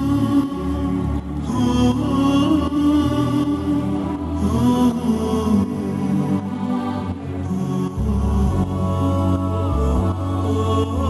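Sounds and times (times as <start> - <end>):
chanted vocal line: 0.0 - 11.0
slow devotional music: 0.0 - 11.0.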